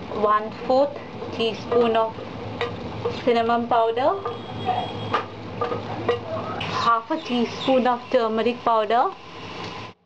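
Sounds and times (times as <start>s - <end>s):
metal utensils clicking on pan: 1.5s - 3.3s, 5.1s - 6.7s.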